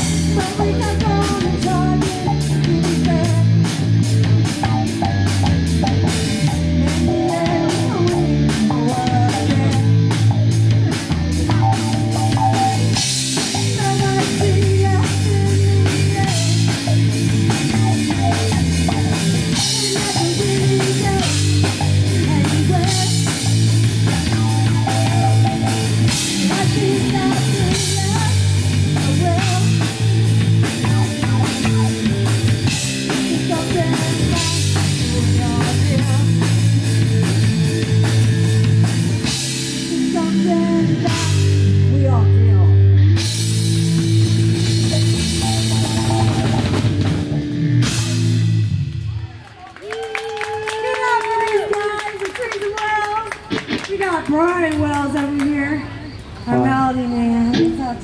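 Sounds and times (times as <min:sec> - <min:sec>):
live rock band playing: 0:00.0 - 0:55.5, 0:56.2 - 0:58.0.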